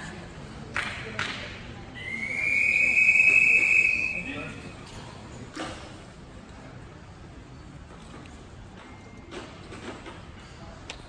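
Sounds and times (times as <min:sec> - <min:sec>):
long whistle blast: 0:02.0 - 0:04.5.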